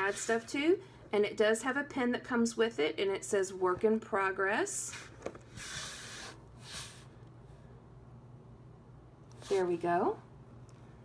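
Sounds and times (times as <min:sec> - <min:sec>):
rustling and sliding of pen: 0:00.0 - 0:00.6, 0:04.8 - 0:07.1, 0:09.3 - 0:09.8.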